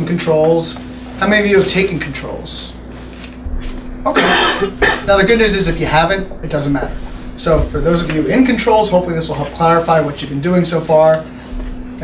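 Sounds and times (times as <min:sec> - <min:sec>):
person coughing: 0:04.2 - 0:05.0.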